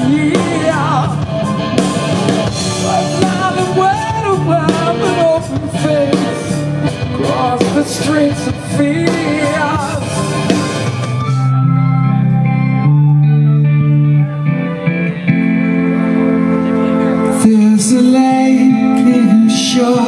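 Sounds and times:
person singing: 0.0 - 11.5, 16.3 - 20.0
drums and cymbals: 0.0 - 11.6
electric guitar: 0.0 - 20.0.

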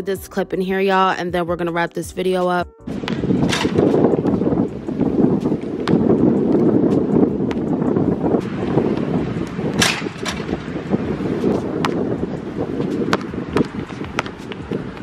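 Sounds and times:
wind buffeting microphone: 2.9 - 15.0
basketball bouncing and hitting hoop: 3.0 - 4.5, 5.4 - 15.0.

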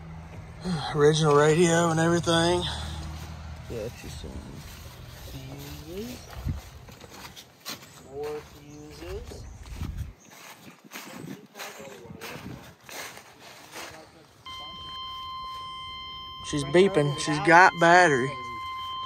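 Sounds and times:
voices: 0.6 - 6.8, 7.8 - 9.9, 11.0 - 19.0
dashboard warning chime beeping: 14.4 - 19.0.

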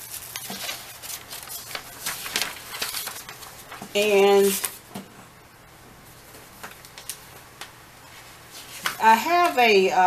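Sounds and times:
rustling and clicks of handling: 8.6 - 9.6.

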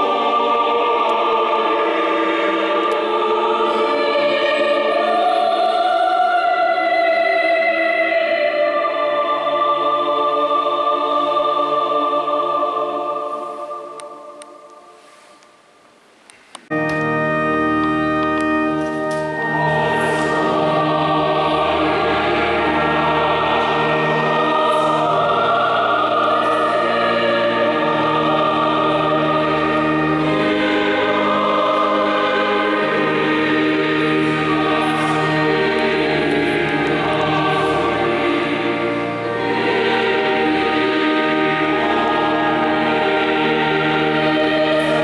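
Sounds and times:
church choir singing chords: 0.0 - 15.8, 16.7 - 45.0.

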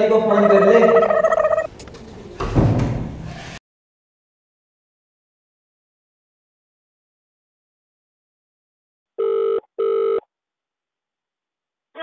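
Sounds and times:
telephone ringback beeps: 9.2 - 10.2.

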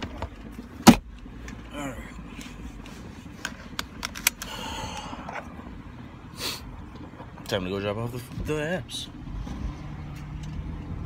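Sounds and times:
car cabin rumble: 0.0 - 11.0
faint engine hum: 0.0 - 11.0.

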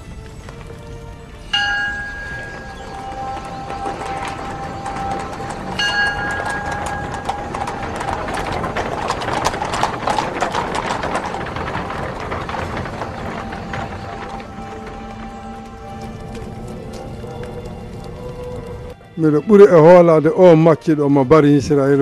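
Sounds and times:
horses' hoofbeats clattering: 0.0 - 22.0.

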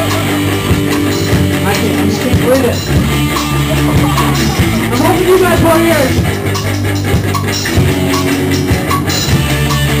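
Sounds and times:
punk rock band playing live: 0.0 - 10.0.

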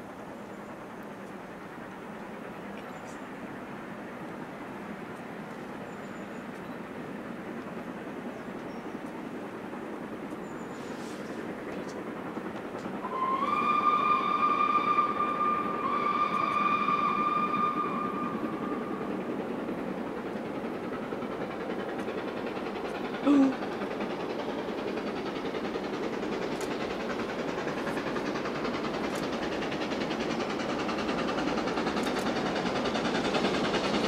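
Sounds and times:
steam locomotive exhaust: 0.0 - 34.0
steam whistle blasts: 13.0 - 19.1.

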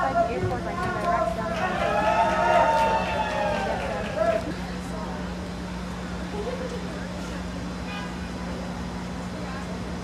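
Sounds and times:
faint crowd voices: 0.0 - 10.0.

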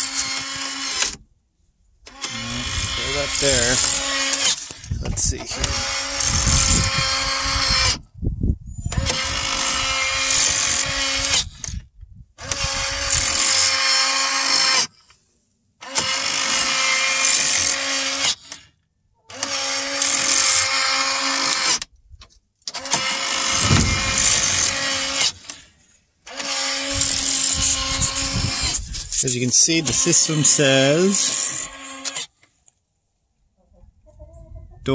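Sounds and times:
electric door motor running: 22.7 - 25.6.

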